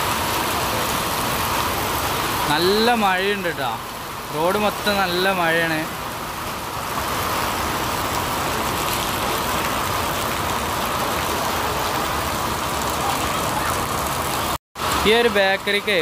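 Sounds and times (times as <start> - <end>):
heavy rain falling: 0.0 - 16.0.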